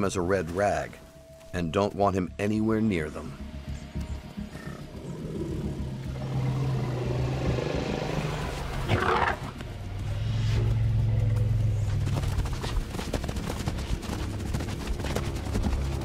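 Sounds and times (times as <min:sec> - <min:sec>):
elephant rumbling: 0:04.4 - 0:12.8.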